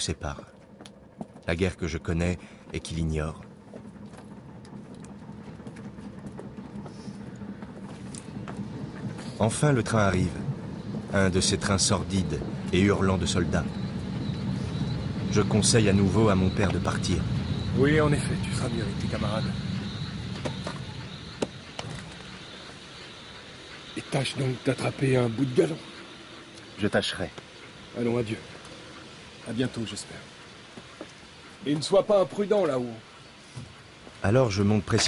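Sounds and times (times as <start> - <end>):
train rumble: 0.0 - 35.0.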